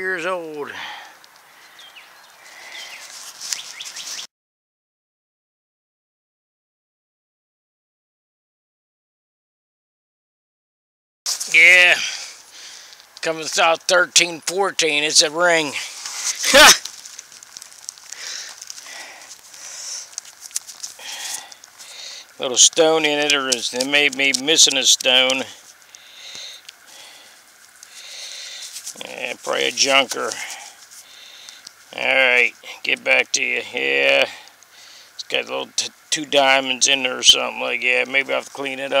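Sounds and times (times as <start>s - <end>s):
birds chirping: 0.0s - 4.3s, 11.3s - 39.0s
crackly rustle: 0.2s - 4.3s, 11.3s - 39.0s.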